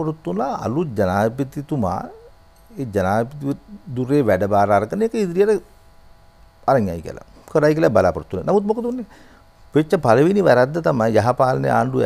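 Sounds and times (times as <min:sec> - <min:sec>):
man speaking: 0:00.0 - 0:05.7, 0:06.7 - 0:09.1, 0:09.8 - 0:12.0.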